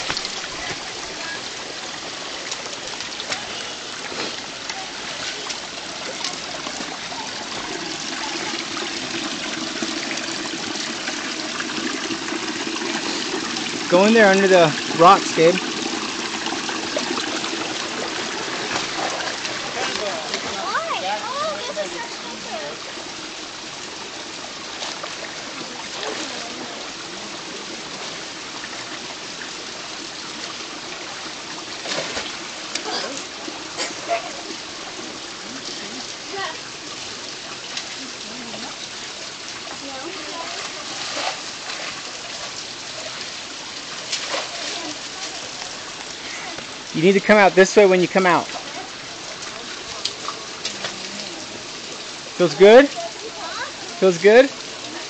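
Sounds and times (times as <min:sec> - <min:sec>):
faint water splashes: 0:00.0 - 0:55.0
water rushing among boulders: 0:00.0 - 0:55.0
child splashing in water: 0:25.7 - 0:26.7, 0:39.9 - 0:42.5, 0:44.0 - 0:45.6.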